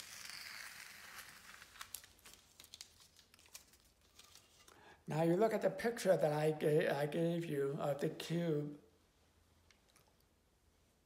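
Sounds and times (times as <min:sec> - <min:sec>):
tape peeling off paper: 0:00.0 - 0:04.7
tape crinkling: 0:00.0 - 0:04.8.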